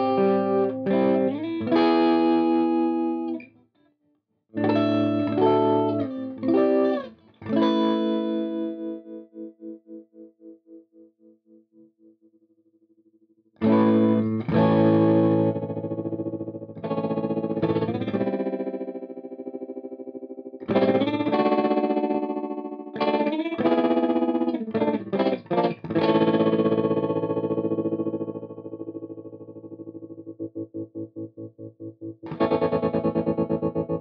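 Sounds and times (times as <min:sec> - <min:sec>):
electric guitar chords with tremolo: 0:00.0 - 0:03.4, 0:04.6 - 0:10.8, 0:13.6 - 0:34.0.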